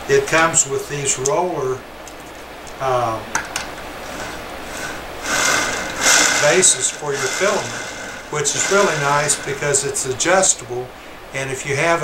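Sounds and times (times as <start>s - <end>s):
plastic spool rolling on rollers: 4.1s - 10.2s.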